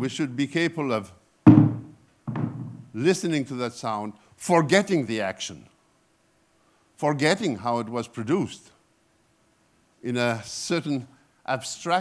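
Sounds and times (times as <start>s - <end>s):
struck impact with ringing tone: 1.5s - 2.9s.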